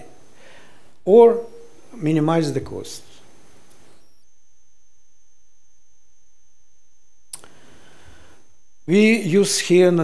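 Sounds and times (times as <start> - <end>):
high-pitched electronic whine: 0.0 - 10.0.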